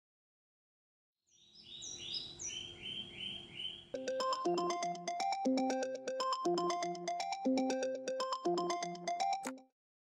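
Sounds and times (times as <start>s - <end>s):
birds chirping: 1.3s - 4.6s
smartphone alarm ringing: 4.0s - 9.5s.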